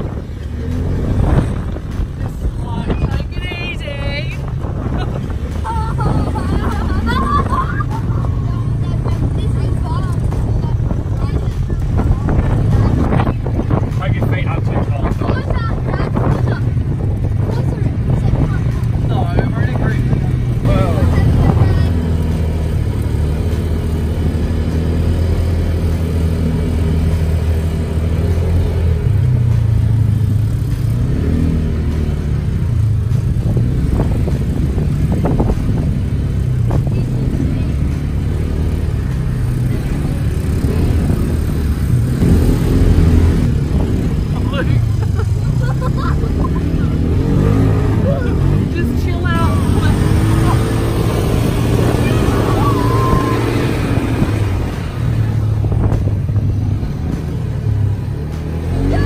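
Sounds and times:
buggy engine running: 0.0 - 59.0.

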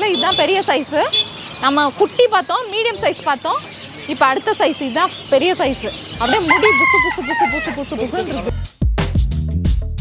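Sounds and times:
woman talking: 0.0 - 8.5
rooster crowing: 6.2 - 7.9.

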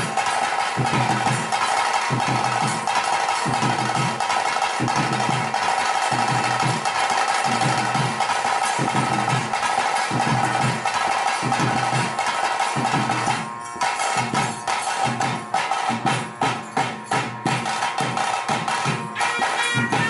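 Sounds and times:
drums beating steady rhythm: 0.0 - 20.0.

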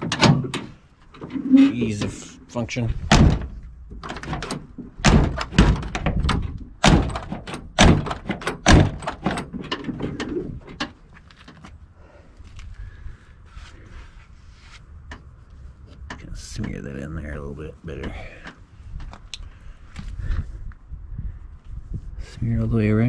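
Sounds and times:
car door opening and shutting: 0.0 - 2.1, 3.1 - 11.7
car door latch clunks: 3.1 - 9.9.

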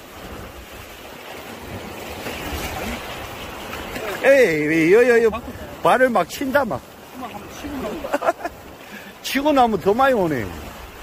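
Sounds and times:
small waves washing on shore: 0.0 - 11.0.

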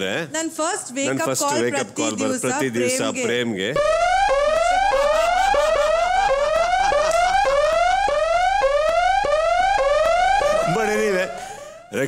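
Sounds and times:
electronic whooping alarm: 3.8 - 12.0.

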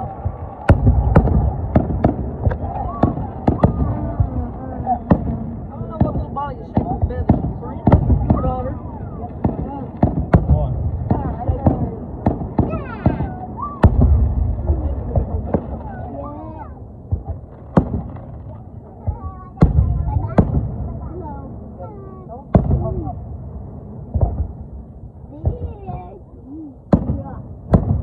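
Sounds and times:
fireworks bangs and crackles: 0.0 - 28.0
heavy fireworks booms: 0.0 - 28.0
onlookers' voices: 0.0 - 28.0.

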